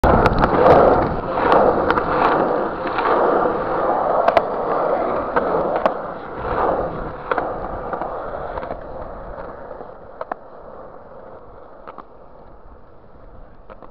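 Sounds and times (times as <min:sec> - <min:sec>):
skateboard wheels clicking over cracks: 0:00.0 - 0:13.9
skateboard wheels rolling on concrete: 0:00.0 - 0:13.9.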